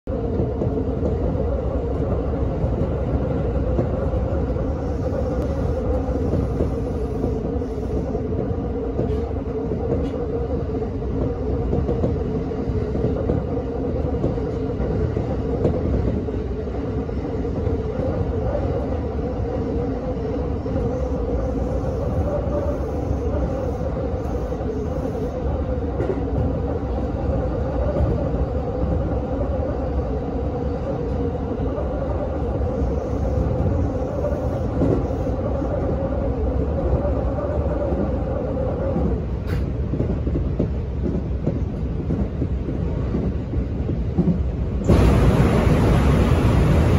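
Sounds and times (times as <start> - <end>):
train cabin rumble: 0.1 - 46.9.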